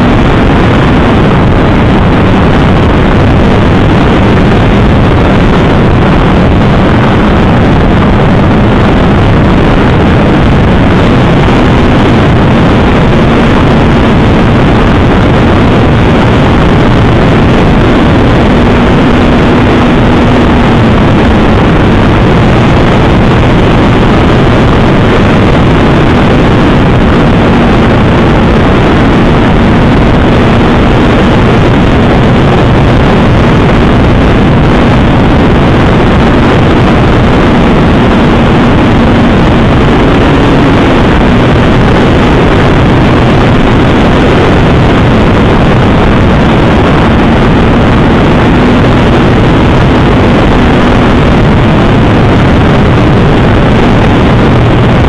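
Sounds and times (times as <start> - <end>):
model plane propeller and wind rush: 0.0 - 55.0.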